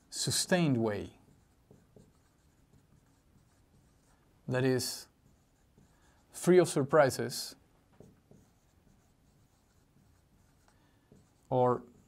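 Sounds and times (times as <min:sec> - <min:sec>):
marker scratching on whiteboard: 0:00.2 - 0:06.9, 0:07.9 - 0:12.0.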